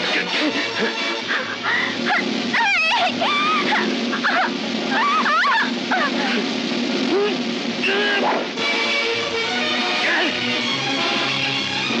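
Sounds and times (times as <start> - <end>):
film background music: 0.0 - 4.9, 5.7 - 12.0
voices yelling and whooping: 2.1 - 6.4.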